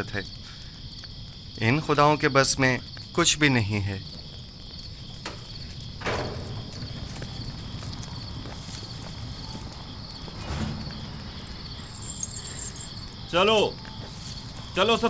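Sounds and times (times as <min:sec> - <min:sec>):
crickets chirping: 0:00.0 - 0:15.0
knocks and thuds: 0:05.2 - 0:08.2.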